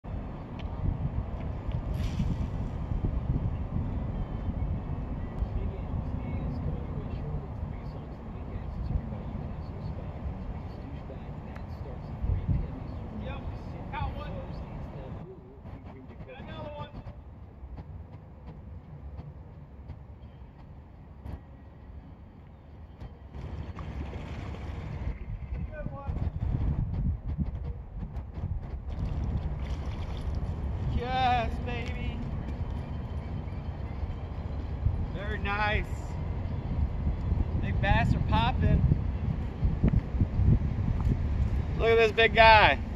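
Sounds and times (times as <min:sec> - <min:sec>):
wind buffeting microphone: 0:00.1 - 0:20.0, 0:23.0 - 0:42.9
faint distant voices: 0:05.4 - 0:18.5.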